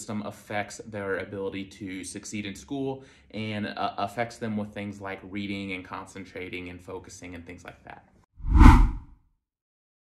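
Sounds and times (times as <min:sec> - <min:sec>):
whoosh transition effect: 0:08.4 - 0:09.0.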